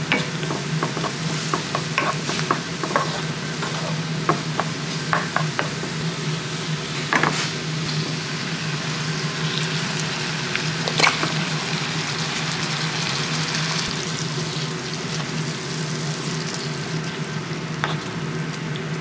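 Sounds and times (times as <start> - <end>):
food sizzling in a frying pan: 0.0 - 19.0.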